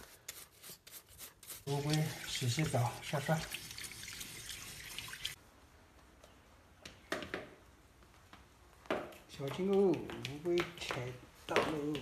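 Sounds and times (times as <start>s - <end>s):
brush scrubbing shell: 0.0s - 3.6s.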